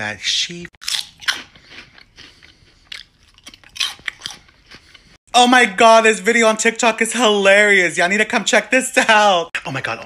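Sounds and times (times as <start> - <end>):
person chewing crunchy food: 0.8 - 5.2.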